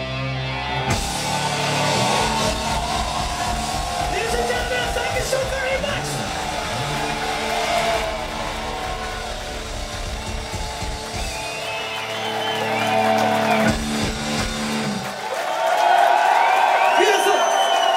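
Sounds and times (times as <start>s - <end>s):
rock band final chord: 0.0s - 15.2s
crowd cheering and whistling: 0.0s - 17.9s.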